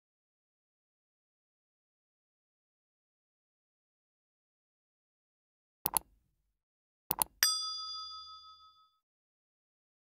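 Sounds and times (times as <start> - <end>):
mouse double click: 5.9 - 6.1, 7.1 - 7.4
bright bell ding: 7.4 - 9.0.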